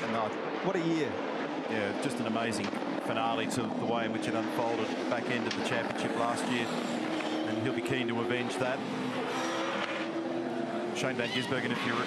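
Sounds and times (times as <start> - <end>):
race car engine running hard: 0.0 - 12.0.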